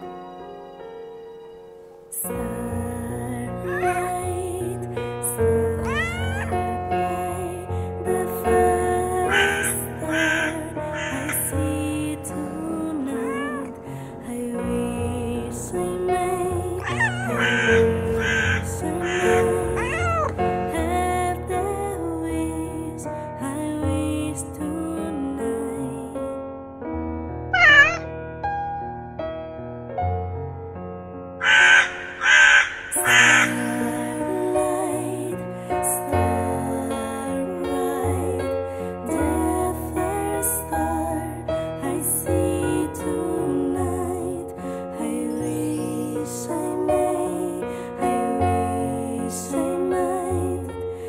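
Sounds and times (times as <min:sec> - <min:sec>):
soft background music: 0:00.0 - 0:26.4
cat meowing: 0:03.7 - 0:04.2, 0:05.8 - 0:06.7, 0:09.3 - 0:11.4, 0:13.1 - 0:13.7, 0:16.8 - 0:20.4, 0:27.6 - 0:28.1
harsh animal calls: 0:03.7 - 0:04.2, 0:05.8 - 0:06.7, 0:09.2 - 0:11.6, 0:13.2 - 0:13.7, 0:16.8 - 0:20.5, 0:27.6 - 0:28.1, 0:31.4 - 0:33.8.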